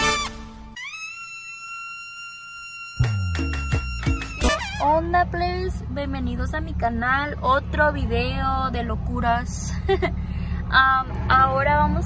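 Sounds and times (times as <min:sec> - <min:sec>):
herald trumpets high note: 0:00.0 - 0:04.9.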